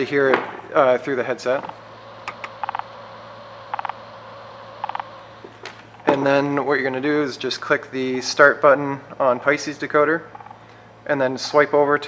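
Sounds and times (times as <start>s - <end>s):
radio static hiss: 0.0s - 8.2s
rapid radio beeps: 1.6s - 6.3s.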